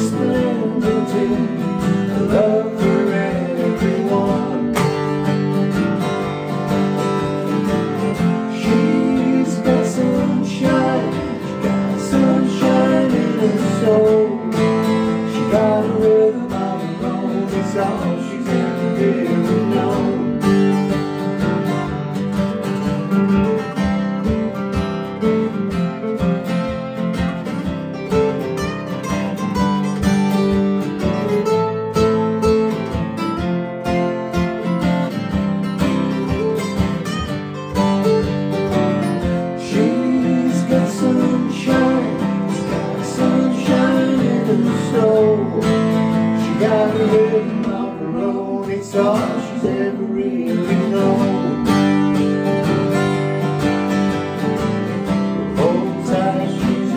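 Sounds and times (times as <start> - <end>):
man singing: 0.0 - 5.1, 8.2 - 21.0, 39.4 - 52.1, 55.3 - 56.9
acoustic guitars strumming chords: 0.0 - 56.9.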